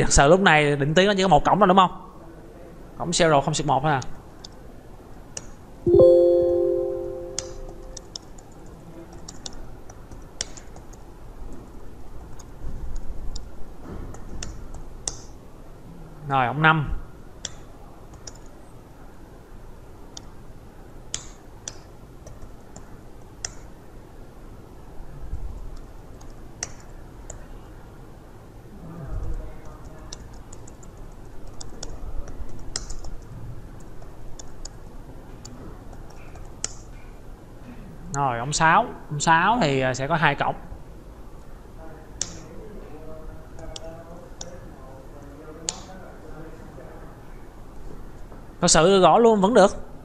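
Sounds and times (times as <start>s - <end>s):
keyboard typing clicks: 5.9s - 8.2s.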